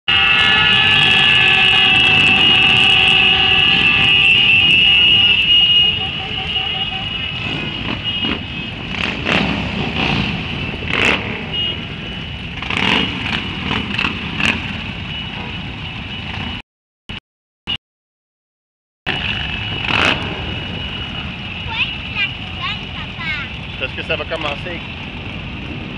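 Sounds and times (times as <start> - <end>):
horns sounding together: 0.1 - 8.4
motorcycle engines rumbling: 0.1 - 16.6, 19.1 - 25.9.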